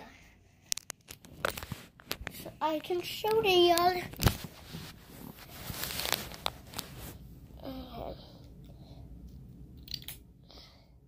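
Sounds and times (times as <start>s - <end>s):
rustling and clicks: 0.6s - 7.2s.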